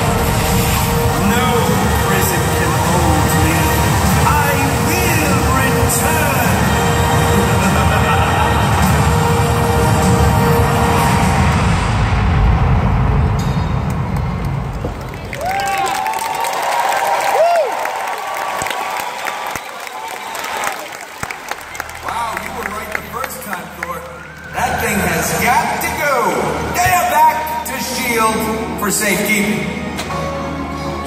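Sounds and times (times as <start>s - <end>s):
audience voices: 0.0s - 31.0s
show soundtrack over loudspeakers: 0.0s - 31.0s.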